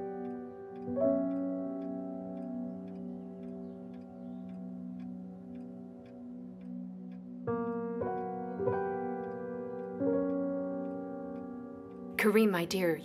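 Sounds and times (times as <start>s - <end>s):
faint regular ticking: 0.0s - 13.0s
sustained keyboard chords: 0.0s - 13.0s.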